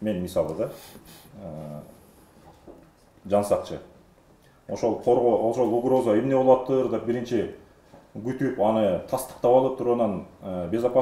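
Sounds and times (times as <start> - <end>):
man speaking: 0.0 - 2.0, 3.2 - 4.0, 4.7 - 7.6, 8.2 - 11.0.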